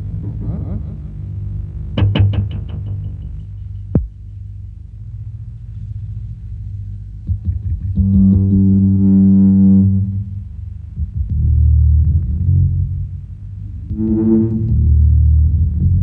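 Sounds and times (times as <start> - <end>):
heavy bass notes: 0.0 - 16.0
low distorted drone: 0.0 - 16.0
held guitar note: 13.9 - 15.2.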